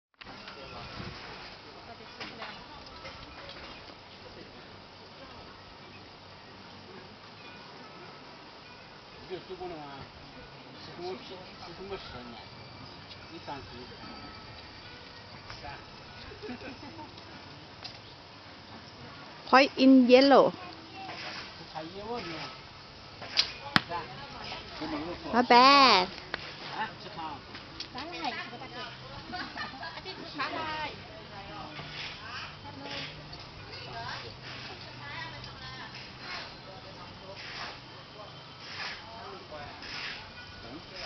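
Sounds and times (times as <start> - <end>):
outdoor background hiss: 0.2 - 41.0.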